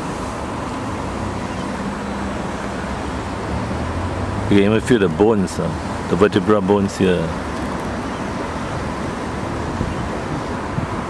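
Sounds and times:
background rumble and hiss: 0.0 - 11.0.

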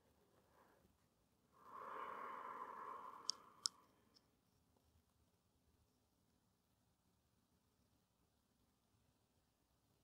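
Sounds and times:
woman exhaling softly: 1.6 - 3.7
faint clicks: 3.1 - 4.3.

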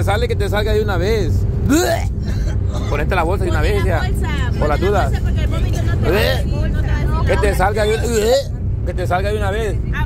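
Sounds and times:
vehicle cabin road rumble: 0.0 - 10.0.

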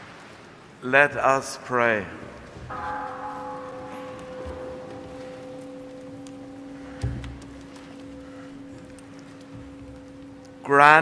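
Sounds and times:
low church organ note: 2.6 - 11.0.

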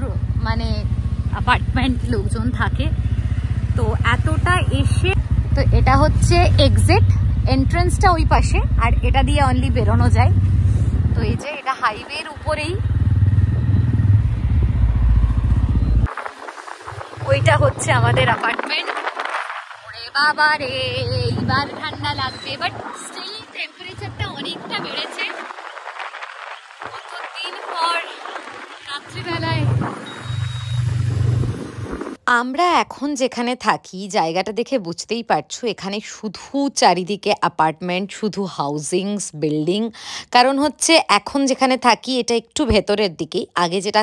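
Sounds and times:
motorcycle engine rumble: 0.0 - 32.2
wind on microphone: 3.7 - 32.2
road noise hiss: 12.0 - 32.2.

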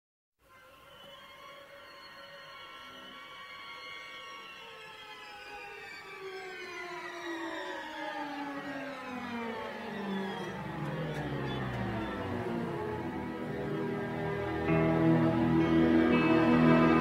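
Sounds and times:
orchestral strings playing: 10.2 - 17.0.

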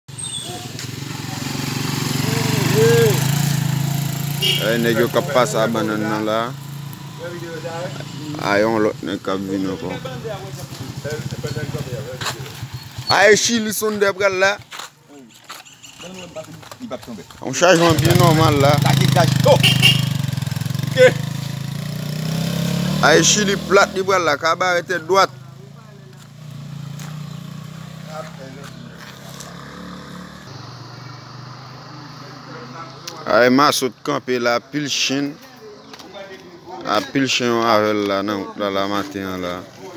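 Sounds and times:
voices talking: 0.2 - 39.9
small engine running at low revs: 26.2 - 31.2.

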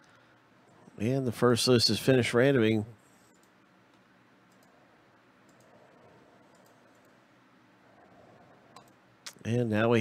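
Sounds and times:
faint computer mouse clicks: 3.3 - 4.8, 5.4 - 5.8, 6.4 - 7.2, 8.7 - 9.4.

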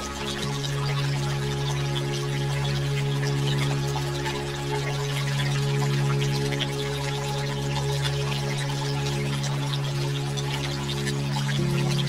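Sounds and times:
droplet-like trickling: 0.0 - 12.0
low drone: 0.0 - 12.0.

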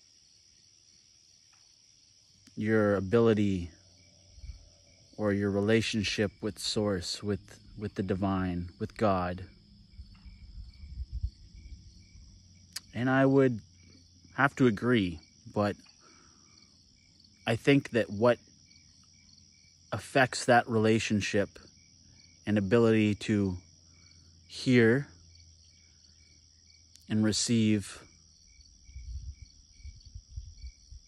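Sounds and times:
crickets trilling: 0.0 - 31.0
insect chorus: 0.0 - 31.0
low rumble on microphone: 2.7 - 13.8, 28.6 - 31.0
mouth click: 12.7 - 13.0.

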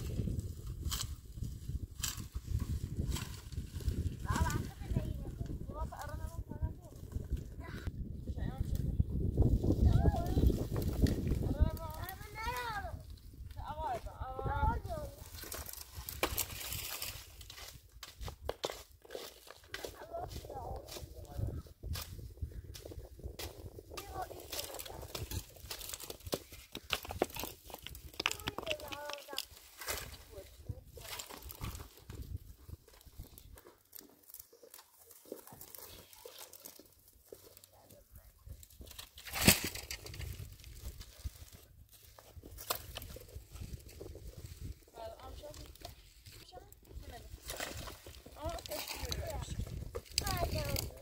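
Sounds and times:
dry twigs crackling and snapping: 0.0 - 6.4, 8.6 - 51.0
footsteps on loose stones: 22.8 - 51.0.

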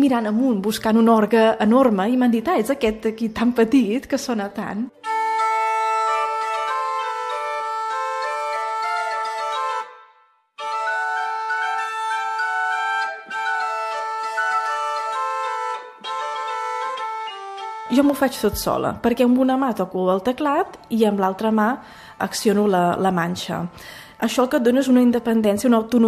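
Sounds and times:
portative organ melody: 4.6 - 19.0
organ drone pipe: 5.0 - 9.9, 10.6 - 18.1.

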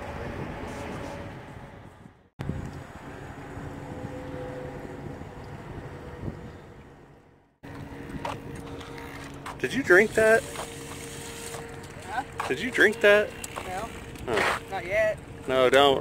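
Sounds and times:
wind on microphone: 0.0 - 9.2
low engine hum: 0.0 - 16.0.

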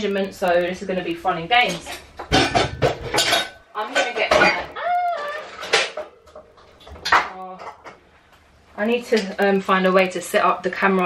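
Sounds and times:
dishes and cutlery clattering: 1.6 - 4.8, 5.4 - 8.0.

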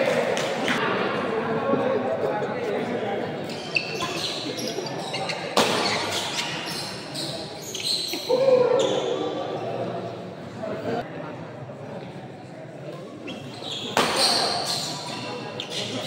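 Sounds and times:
spectators' voices: 0.0 - 16.0
shoes squeaking on court floor: 3.4 - 9.6, 13.2 - 16.0.

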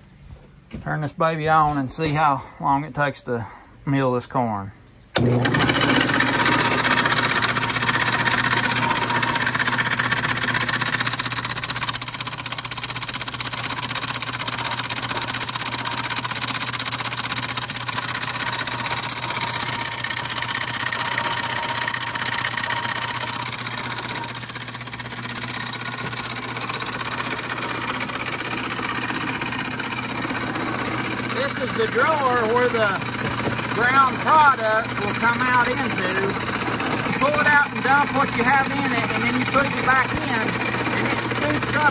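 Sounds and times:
electric motor hum: 5.1 - 41.9
millstones grinding corn: 5.2 - 41.9.

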